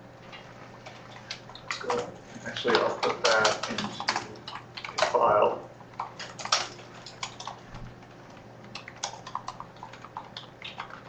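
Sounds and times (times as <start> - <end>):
person's voice: 1.7 - 5.7.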